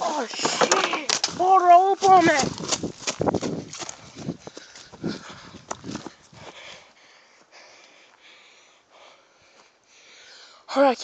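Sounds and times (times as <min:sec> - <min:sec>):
running footsteps: 0:00.1 - 0:08.4
handheld phone rustling and knocking: 0:00.3 - 0:04.0.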